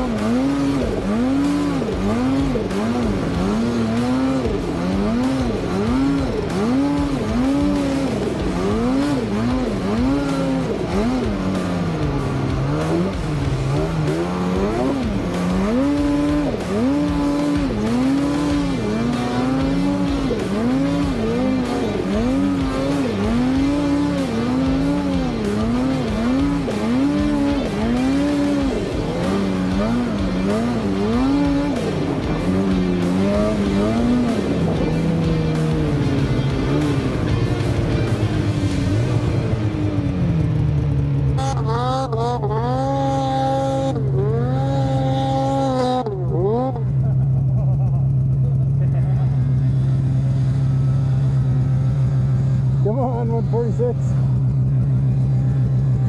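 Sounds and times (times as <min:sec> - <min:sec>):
snowmobile engine revving: 0:00.0 - 0:56.0.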